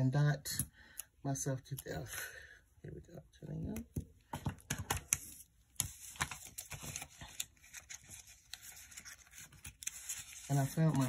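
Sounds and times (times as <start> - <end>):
paper sheets rustling: 4.8 - 11.0.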